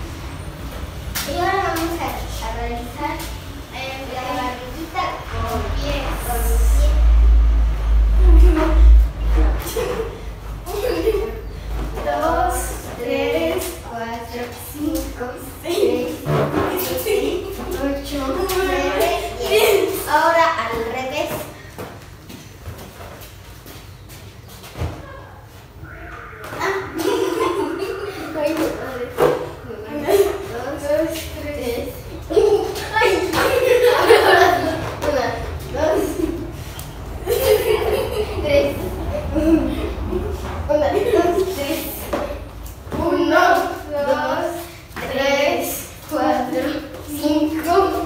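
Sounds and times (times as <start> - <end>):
girl talking: 1.2 - 7.4, 8.1 - 21.7, 26.0 - 36.6, 37.2 - 48.0
children speaking: 1.2 - 21.7, 25.0 - 48.0.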